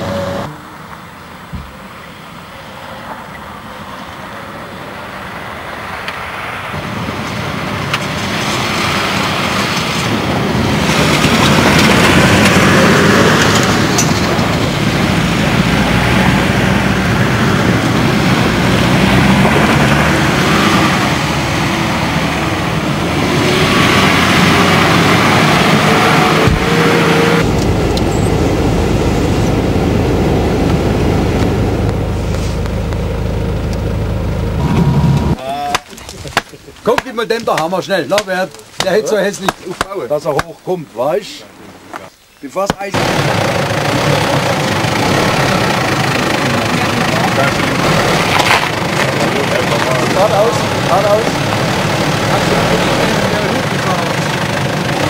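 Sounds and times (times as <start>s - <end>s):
off-road vehicles driving past: 0.0s - 40.3s, 42.7s - 55.0s
low engine hum: 5.6s - 35.4s, 43.0s - 55.0s
tyres on loose dirt: 6.0s - 55.0s.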